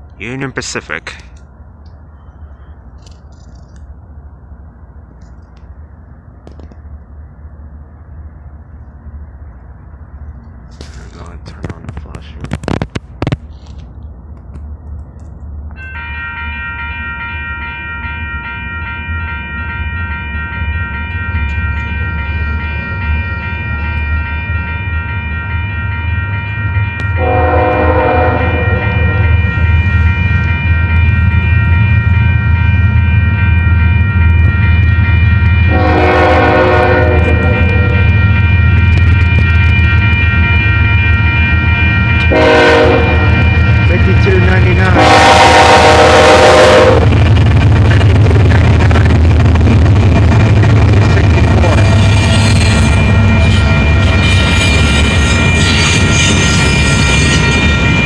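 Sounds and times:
diesel locomotive rumble: 0.0s - 58.0s
crossing bell ringing: 15.7s - 49.0s, 49.6s - 58.0s
train horn: 15.8s - 47.2s, 51.5s - 58.0s.

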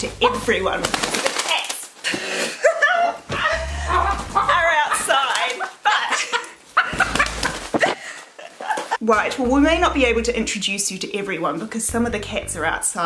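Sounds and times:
hen wings flapping: 0.2s - 2.0s, 4.0s - 5.8s, 6.8s - 8.0s.

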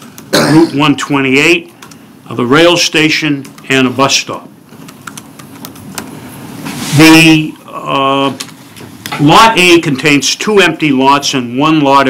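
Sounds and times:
person talking: 0.4s - 4.6s, 6.9s - 8.5s, 9.1s - 12.0s.

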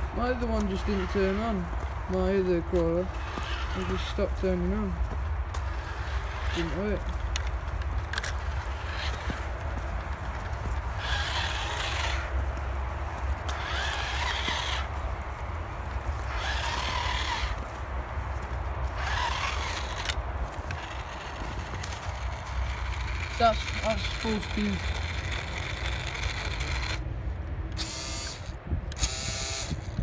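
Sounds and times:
small electric motor whining: 0.0s - 1.8s, 2.7s - 4.9s, 5.5s - 12.6s, 13.4s - 17.8s, 18.8s - 27.0s, 27.7s - 30.0s.

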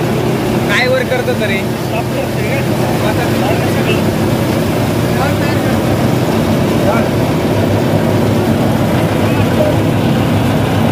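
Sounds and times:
mill machine drone: 0.0s - 10.9s.

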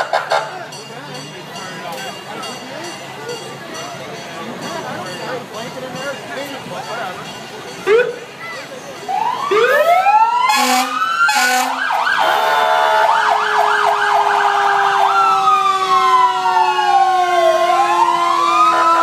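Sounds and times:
fire truck sirens: 0.0s - 19.0s
horn blasts: 10.5s - 19.0s.

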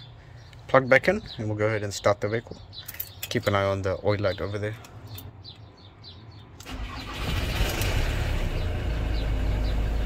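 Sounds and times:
diesel engine starting and idling: 6.6s - 10.0s.

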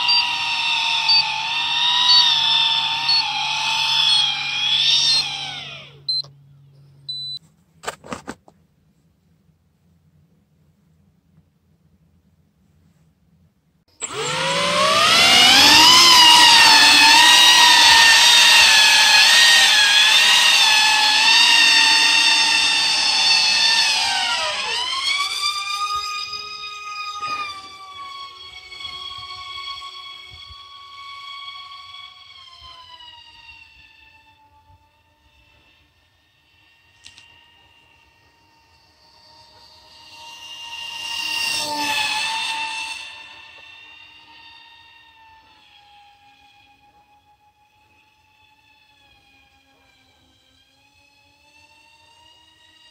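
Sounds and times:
rc plane motors whining: 0.0s - 7.4s, 13.9s - 52.9s.

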